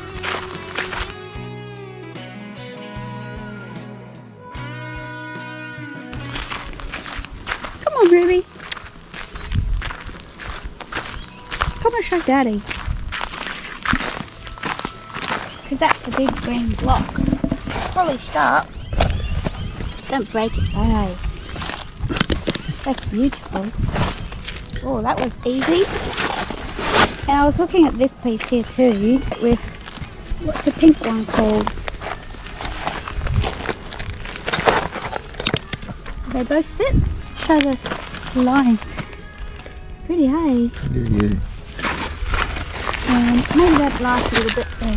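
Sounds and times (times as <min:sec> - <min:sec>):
footsteps on gravel: 0:00.0 - 0:01.2, 0:06.1 - 0:39.9, 0:40.8 - 0:44.9
sharp knocks: 0:16.9 - 0:17.9
rock pick scraping gravel: 0:30.5 - 0:36.5.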